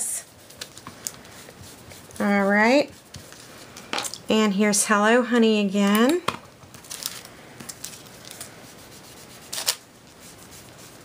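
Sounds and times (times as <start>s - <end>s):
sponge scuffing on paper: 0.3s - 3.7s.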